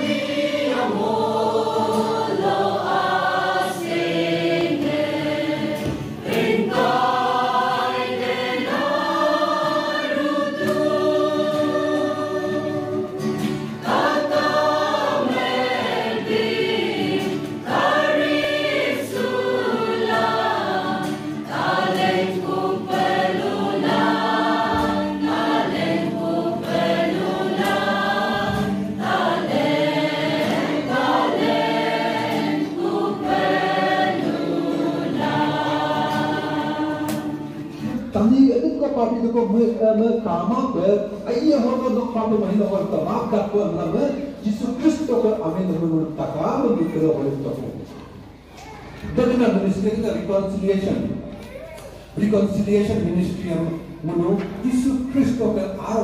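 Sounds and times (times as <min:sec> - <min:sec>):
mixed choir singing a hymn: 0:00.0 - 0:38.3
acoustic guitar: 0:00.0 - 0:56.0.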